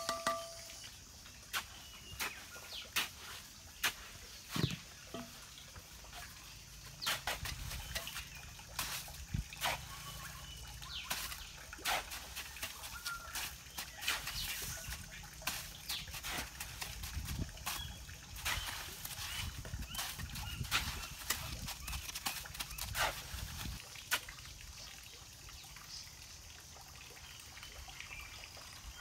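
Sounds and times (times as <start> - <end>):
wooden stick tamping: 3.8 - 5.3
shovel scraping cement mix: 7.0 - 23.8.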